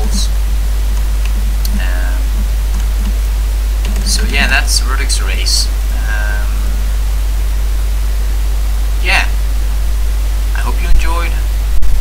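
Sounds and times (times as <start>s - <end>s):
electrical hum and hiss: 0.0s - 12.0s
person humming: 1.6s - 2.4s, 5.9s - 6.8s.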